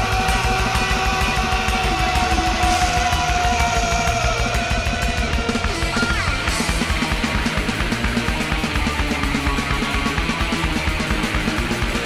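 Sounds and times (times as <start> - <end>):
distorted electric guitar: 0.0 - 12.0
fast low-end rhythm: 0.0 - 12.0.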